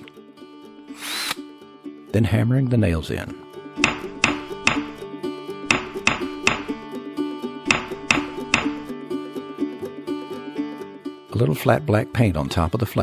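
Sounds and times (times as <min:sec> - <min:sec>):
plucked string music: 0:00.0 - 0:13.0
hammer driving nails into wood: 0:03.8 - 0:05.0, 0:05.7 - 0:06.8, 0:07.7 - 0:08.9.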